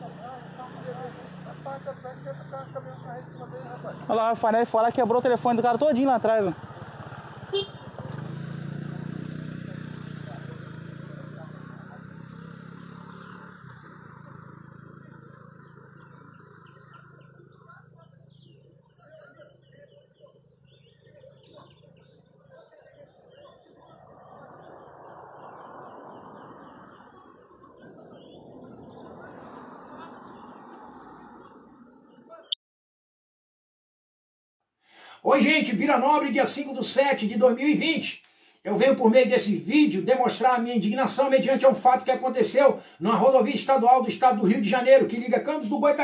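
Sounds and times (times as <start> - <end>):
vehicle engine: 0.0 - 32.0
birds chirping: 0.0 - 32.6, 35.3 - 46.0
faint outdoor background noise: 0.0 - 32.6, 35.0 - 46.0.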